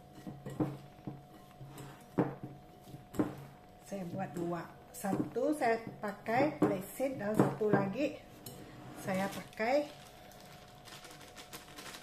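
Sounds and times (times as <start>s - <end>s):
plastic packet crinkling: 9.2s - 12.0s.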